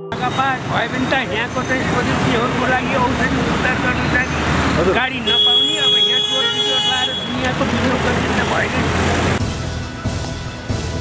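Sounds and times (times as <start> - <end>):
road traffic noise: 0.1 - 11.0.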